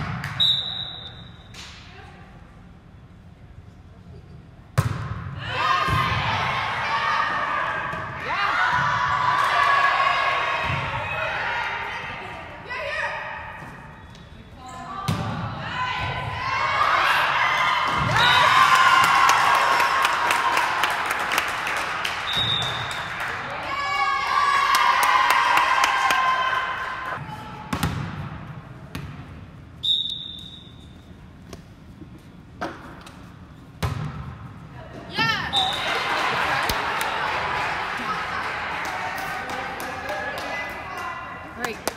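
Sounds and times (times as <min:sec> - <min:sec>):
referee's whistle blasts: 0:00.4 - 0:01.5, 0:22.3 - 0:23.1, 0:29.8 - 0:31.0
volleyball thudding: 0:04.8 - 0:05.2, 0:27.7 - 0:29.2, 0:33.8 - 0:34.4
people shouting and cheering: 0:05.4 - 0:13.2.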